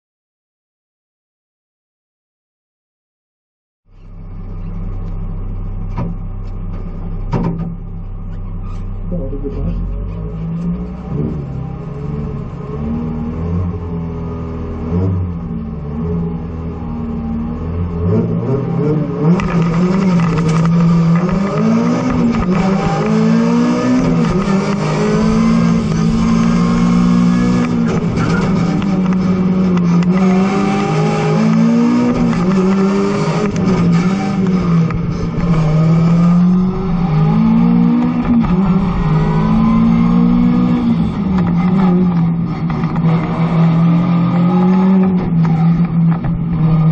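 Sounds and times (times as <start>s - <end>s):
car engine revving: 4.0s - 46.9s.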